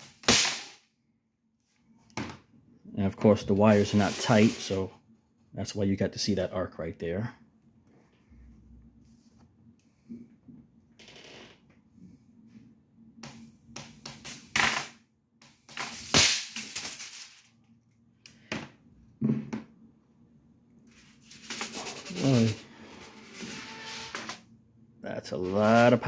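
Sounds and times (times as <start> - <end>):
high-voltage arcs snapping: 0.0 - 0.8, 15.7 - 17.4
faint low hum: 1.1 - 11.0.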